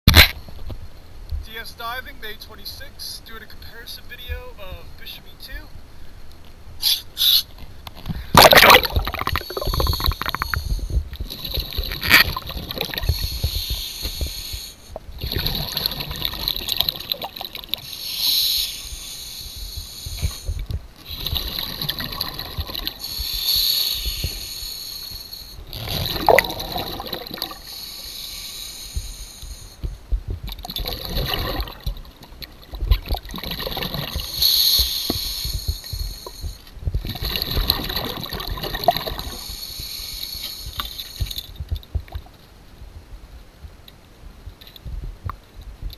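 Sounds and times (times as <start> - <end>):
bubbling exhale: 8.1 - 29.8
scuba regulator breathing: 9.0 - 12.1, 12.9 - 15.8, 17.8 - 25.8, 27.4 - 30.0, 34.1 - 36.8, 39.1 - 41.6.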